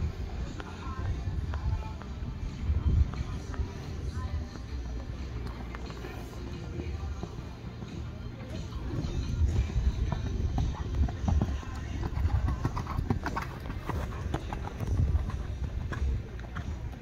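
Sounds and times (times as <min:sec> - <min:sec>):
horse hoofbeats on sand: 0:00.4 - 0:17.0.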